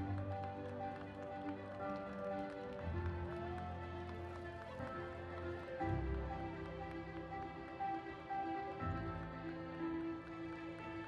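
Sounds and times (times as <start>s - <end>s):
music with held notes: 0.0s - 11.0s.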